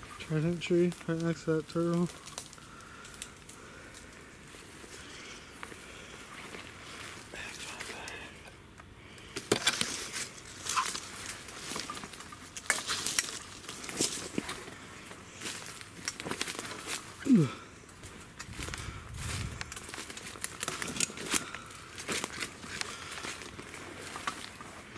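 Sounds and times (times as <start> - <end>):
woodland air: 0.0 - 24.9
brush rustling: 9.2 - 24.9
footsteps crunching through leaves: 9.8 - 24.9.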